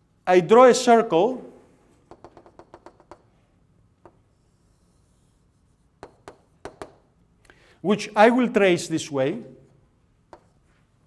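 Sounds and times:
chalk tapping on blackboard: 2.0 - 3.3, 4.0 - 7.0, 10.2 - 10.8.

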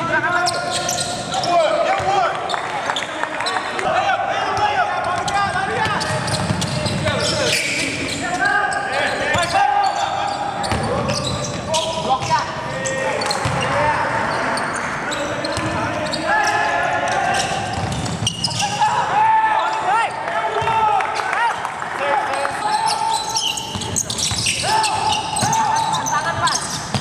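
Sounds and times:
sneakers squeaking on hardwood: 0.3 - 3.7, 5.0 - 18.9, 22.6 - 27.0
basketball bouncing on floor: 13.4 - 13.6.

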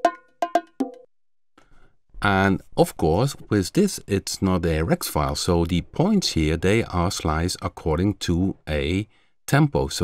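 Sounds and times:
bongo hits: 0.0 - 1.1.

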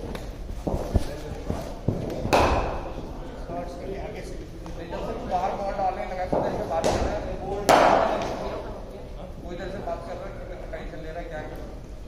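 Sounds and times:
cricket ball thud: 1.9 - 2.9
bat cracking ball with echo: 1.9 - 3.0, 6.3 - 8.4.

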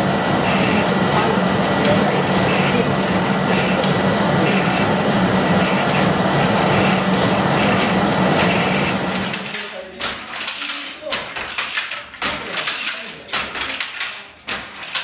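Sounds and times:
machine humming: 0.0 - 9.6.

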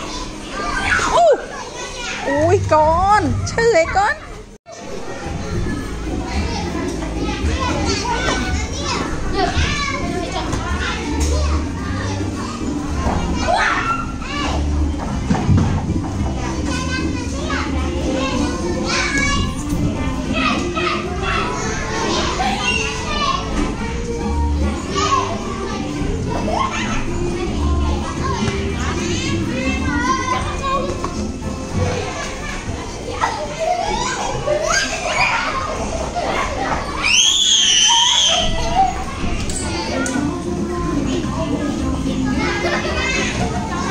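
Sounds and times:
children chattering and shouting: 0.0 - 43.9.

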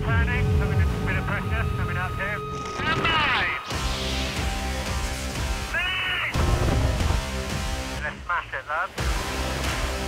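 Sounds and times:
low pulsing music: 0.0 - 2.8, 3.5 - 8.3.

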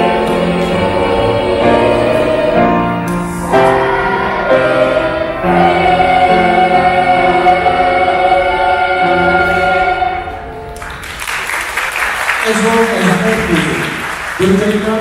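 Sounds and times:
children's choir singing: 0.0 - 10.8
applause: 10.7 - 15.0.

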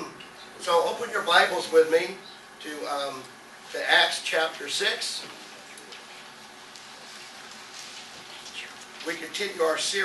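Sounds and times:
paper pages turning: 5.8 - 9.2.

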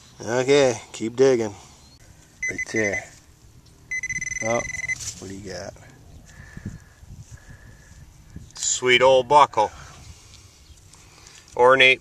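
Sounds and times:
metal detector high tone: 2.4 - 3.1, 3.9 - 5.0.

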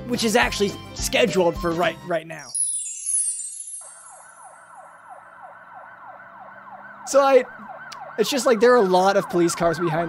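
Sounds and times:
falling glissando of chimes: 2.4 - 4.9
police siren yelping: 3.7 - 10.0.

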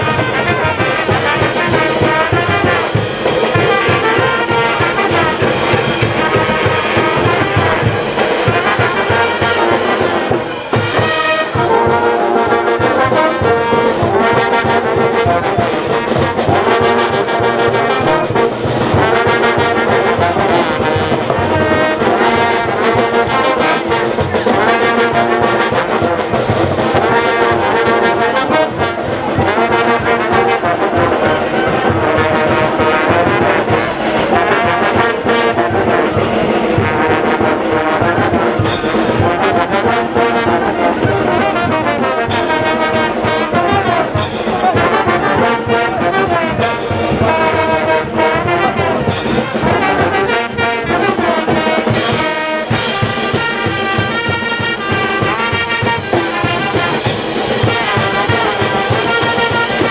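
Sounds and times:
brass band playing dance music: 0.0 - 59.9.

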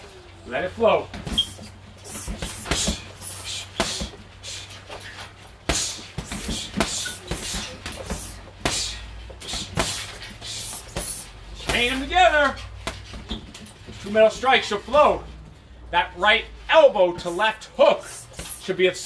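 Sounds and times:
punches thudding on heavy bag: 1.1 - 14.1.

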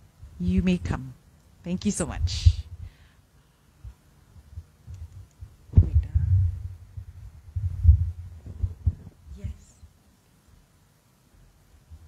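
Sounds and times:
microphone handling thumps: 4.4 - 9.6.

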